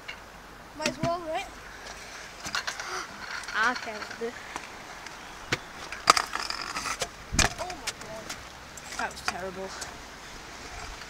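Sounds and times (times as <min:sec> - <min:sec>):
scooter grinding with screech: 0:01.9 - 0:09.9
scooter landing thud: 0:07.0 - 0:08.0.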